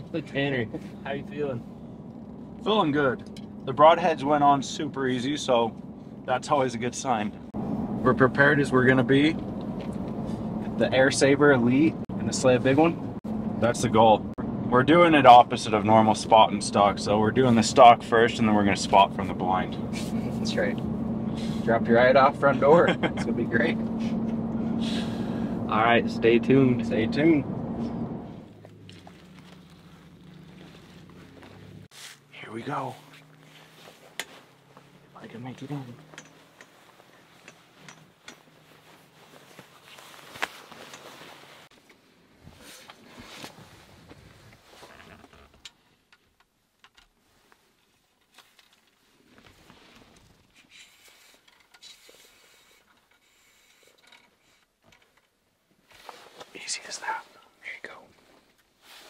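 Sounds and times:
vehicle engine and road drone: 0.0 - 45.8
clothing and gear rustling: 28.3 - 46.4, 47.0 - 54.8, 55.7 - 59.0.

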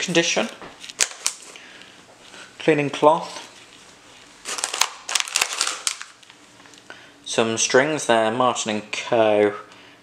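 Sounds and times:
paper packet crinkling: 0.0 - 1.6, 3.2 - 6.8.

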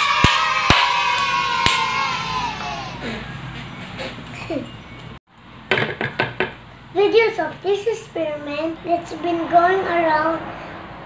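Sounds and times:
hand claps: 0.0 - 3.1
children cheering: 0.0 - 4.3
knocks: 5.7 - 6.6.

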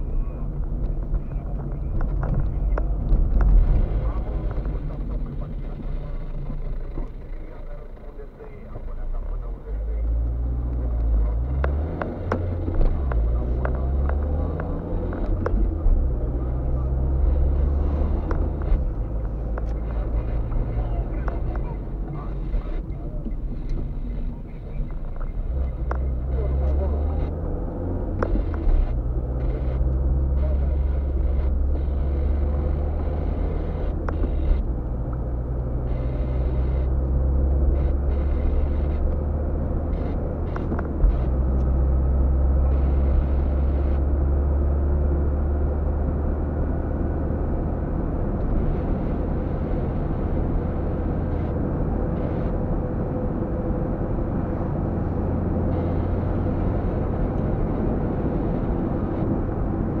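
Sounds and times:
car engine and tyre drone: 0.0 - 60.0.

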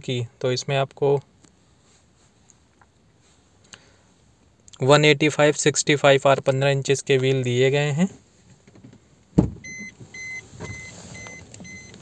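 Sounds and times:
sharp thump: 9.4 - 9.6.

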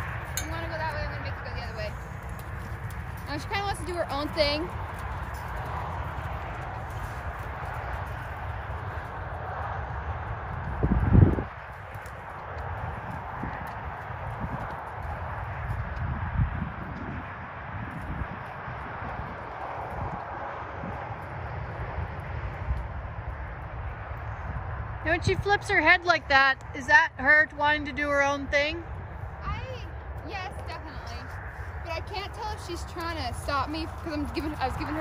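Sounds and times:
horse hoofbeats on sand: 0.0 - 22.9, 30.0 - 35.0
wind rumble on microphone: 0.0 - 35.0.

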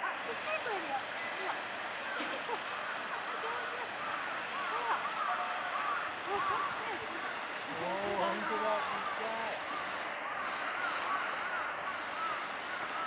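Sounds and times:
indistinct chatter of voices: 0.0 - 13.0.

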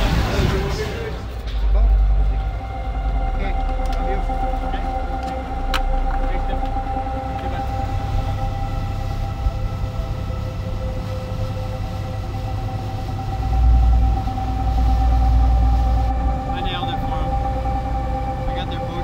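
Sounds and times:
motorboat engine running: 1.7 - 19.0.

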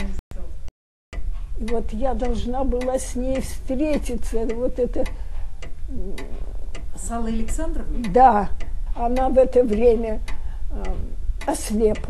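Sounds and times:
clock ticking: 1.2 - 12.0.

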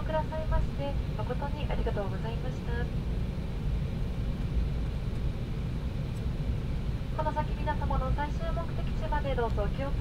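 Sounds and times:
airliner cabin low rumble: 0.0 - 10.0.

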